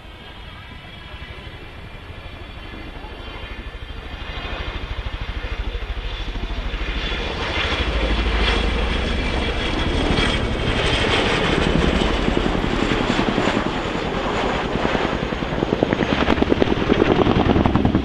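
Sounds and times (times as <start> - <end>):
helicopter rotor blade beat: 0.0 - 18.0
turbine engine whine: 0.0 - 18.0.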